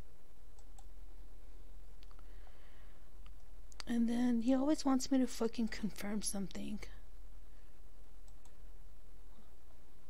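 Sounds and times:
computer mouse clicks: 0.5 - 0.9, 8.2 - 8.6.

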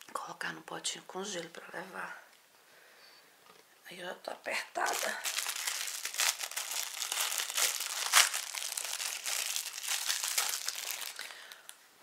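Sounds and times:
plastic packaging crinkling: 4.8 - 11.8.

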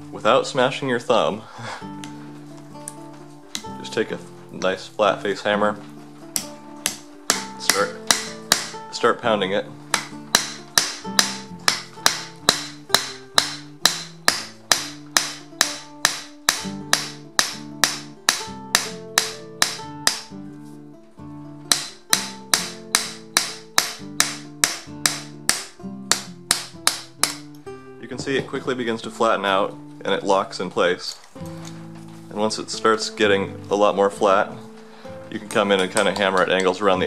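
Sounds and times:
guitar music: 0.0 - 37.0
hammer striking rivet on anvil: 6.4 - 8.8, 9.9 - 20.3, 21.7 - 27.5.

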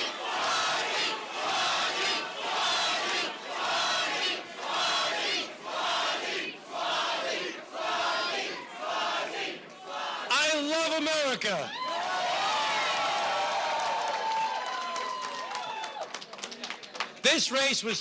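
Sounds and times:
crowd chanting in unison: 0.0 - 10.6.

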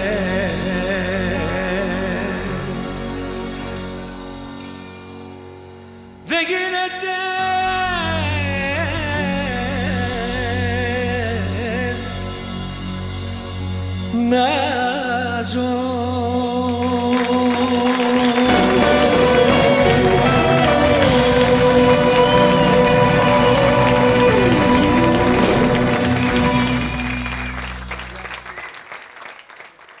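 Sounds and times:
audience applause: 16.8 - 30.0
live band with bouzoukis and clarinet: 17.5 - 28.6.

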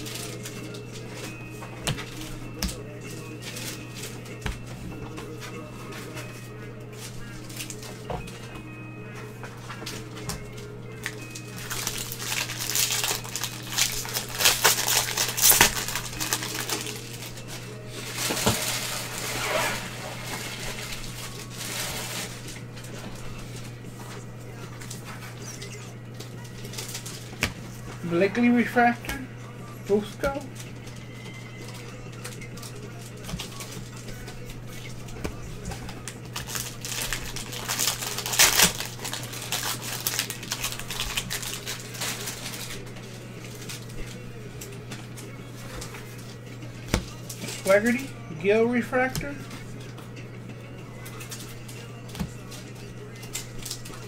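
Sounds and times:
card pack wrapper crinkling: 11.4 - 19.3, 36.0 - 42.8.

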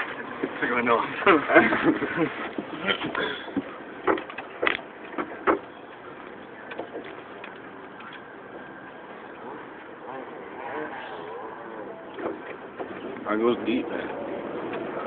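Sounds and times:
vehicle running noise: 0.0 - 15.0.

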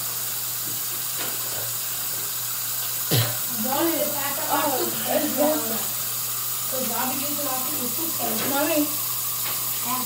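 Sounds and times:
sink tap running: 0.0 - 10.0.

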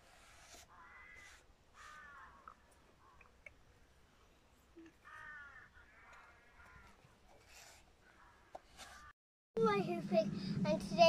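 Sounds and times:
faint bird call: 0.7 - 3.3.

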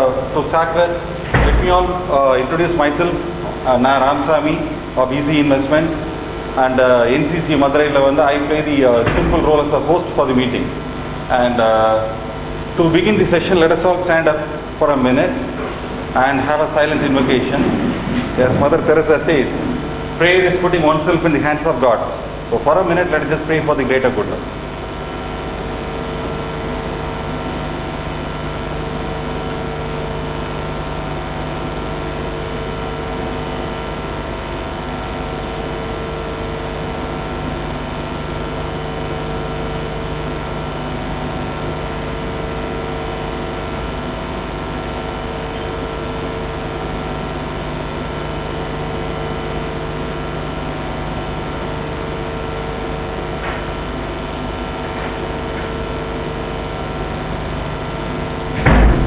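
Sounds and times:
mechanical room hum: 0.0 - 59.0.

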